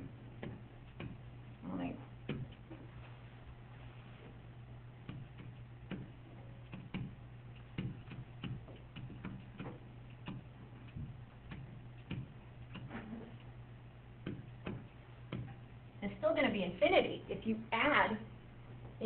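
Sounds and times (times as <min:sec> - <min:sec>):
low electrical hum: 0:00.0 - 0:19.0
stylus tapping on tablet screen: 0:05.0 - 0:12.9, 0:14.2 - 0:15.6.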